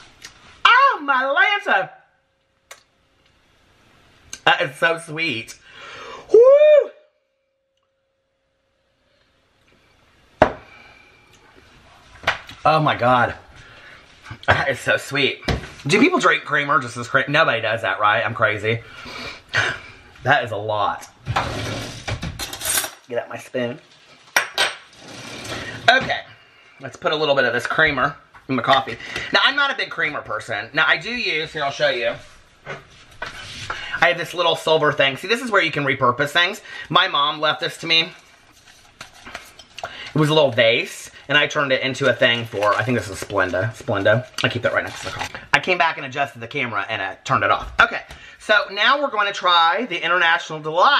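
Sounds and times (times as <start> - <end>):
metal cutlery clinking: 22.4 - 23.1.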